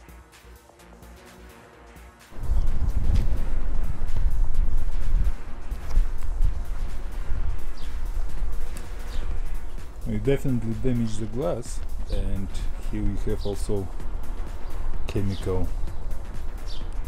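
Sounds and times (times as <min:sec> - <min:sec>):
wind buffeting microphone: 0:02.4 - 0:17.0
faint bird chirps: 0:07.6 - 0:08.1, 0:14.5 - 0:16.9.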